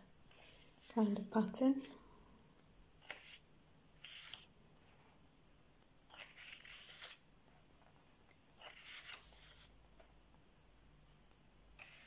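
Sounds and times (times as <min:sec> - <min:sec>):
paper pages rustling: 0:04.0 - 0:05.0, 0:06.1 - 0:07.2, 0:08.6 - 0:10.2.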